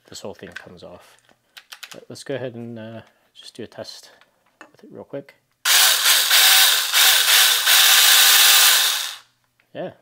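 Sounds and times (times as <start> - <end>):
electric chainsaw running: 5.7 - 9.2.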